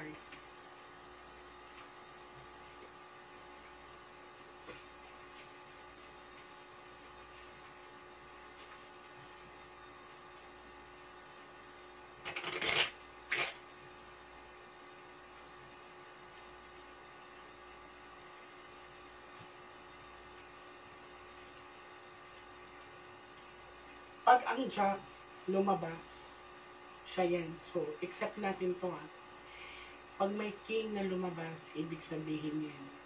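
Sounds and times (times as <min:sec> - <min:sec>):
electrical hum: 0:00.0 - 0:33.0
playing cards being shuffled: 0:12.2 - 0:13.6.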